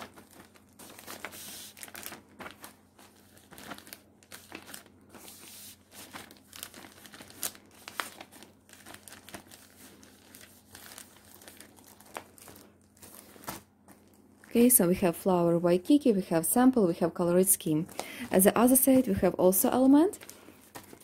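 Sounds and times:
plastic sheet crinkling: 0.0 - 15.2, 17.6 - 21.0.

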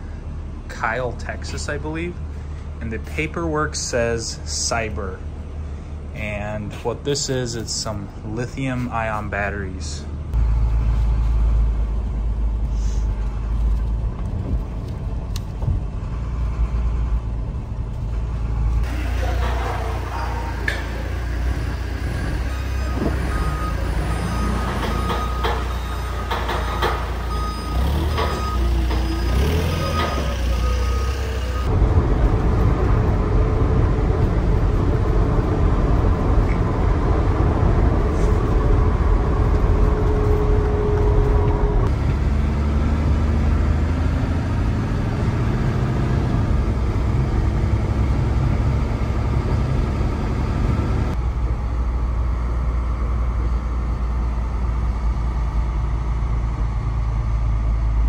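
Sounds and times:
forklift engine: 0.0 - 58.0
truck engine and road noise: 0.0 - 58.0
reversing alarm beeps: 20.8 - 31.7.

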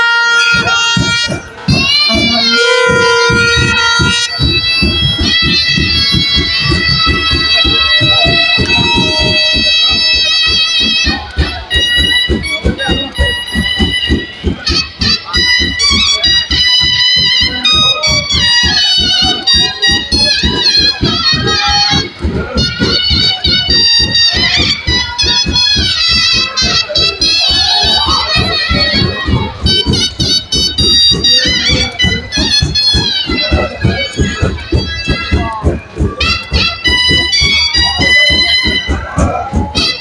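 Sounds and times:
big drums fast rhythm: 0.0 - 40.0
reed pipe melody: 0.0 - 40.0.

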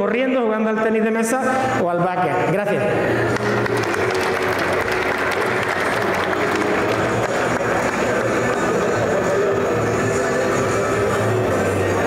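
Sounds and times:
background music: 0.0 - 12.0
audience applauding: 3.2 - 10.8.

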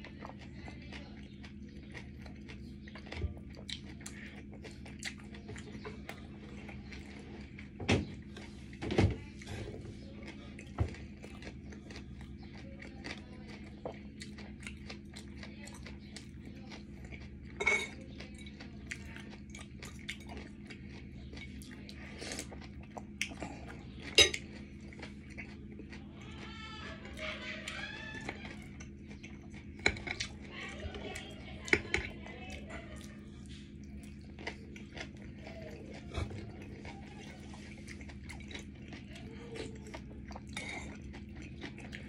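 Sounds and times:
steady low hum: 0.0 - 42.0
cutlery clinking on dishes: 17.6 - 18.0, 24.1 - 24.4.

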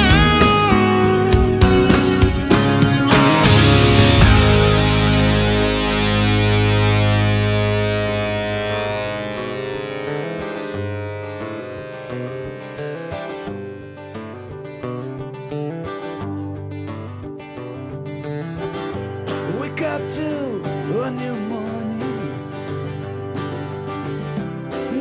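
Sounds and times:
guitar music: 0.0 - 25.0.

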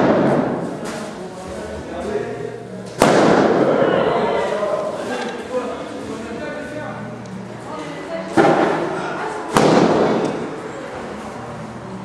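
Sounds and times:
loud sharp bangs with echo: 0.0 - 0.8, 3.0 - 4.0, 9.5 - 10.5.

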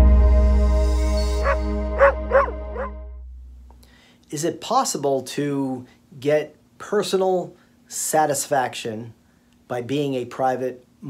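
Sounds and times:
held music chord: 0.0 - 3.8
dog barking: 1.4 - 2.9.

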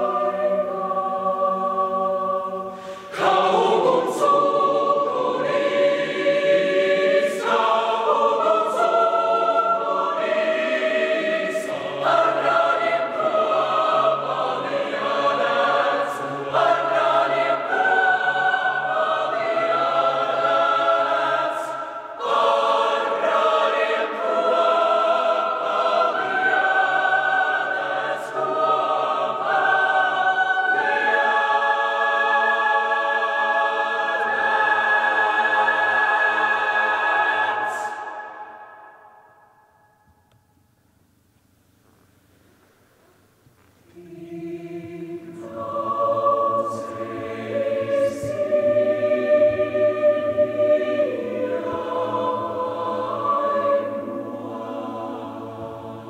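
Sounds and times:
mixed choir singing chords: 0.0 - 40.0, 43.9 - 56.0.

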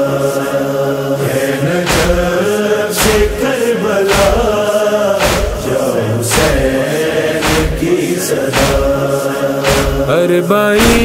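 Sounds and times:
male chorus chanting: 0.0 - 11.0
deep drum beat: 1.9 - 10.2, 10.8 - 11.0.

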